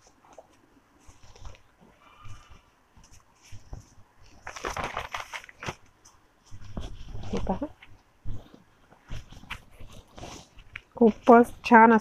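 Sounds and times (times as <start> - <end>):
silk fabric rustling: 0.0 - 12.0.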